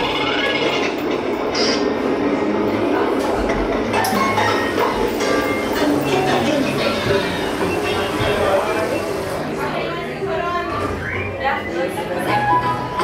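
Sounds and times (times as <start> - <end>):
water spraying: 5.7 - 9.5.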